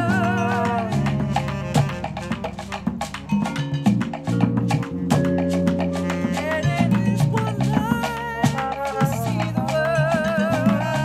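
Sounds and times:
held horn notes: 0.0s - 9.0s
bass line: 0.0s - 11.0s
hand percussion rhythm: 0.0s - 11.0s
vibraphone notes: 0.0s - 11.0s.

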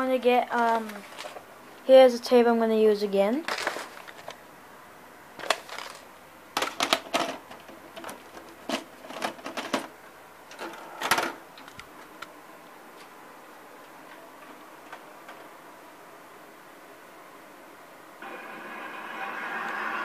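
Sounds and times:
faint steady hum: 0.0s - 20.0s
plastic cassette clicks and knocks: 6.6s - 9.9s.

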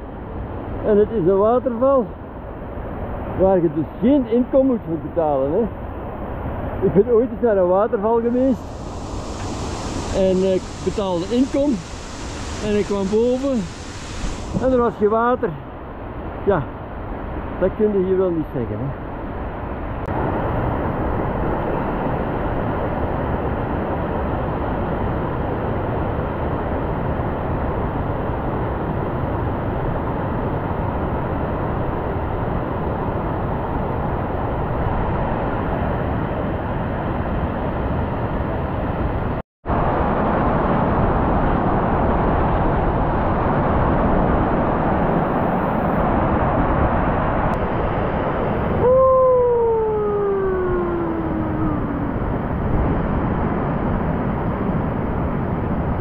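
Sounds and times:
waterfall rushing: 8.3s - 15.1s
long falling tone: 48.6s - 52.5s.

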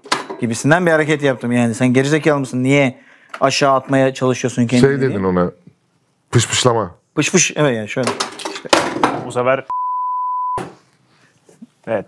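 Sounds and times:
censor bleep: 9.7s - 10.7s.

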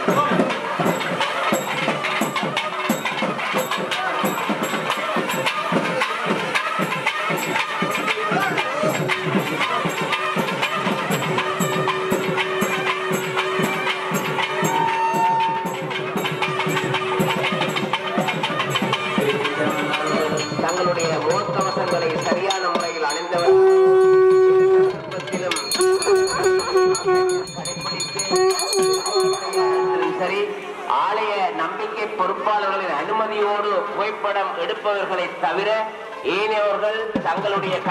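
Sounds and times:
wind instrument holding long notes: 0.0s - 31.2s
fast steady percussion: 0.0s - 33.8s, 34.7s - 37.9s.

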